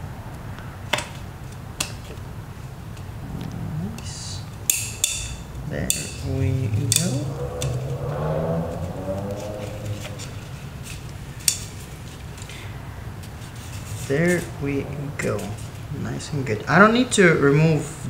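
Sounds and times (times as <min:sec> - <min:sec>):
low voice: 0:14.1 - 0:16.8.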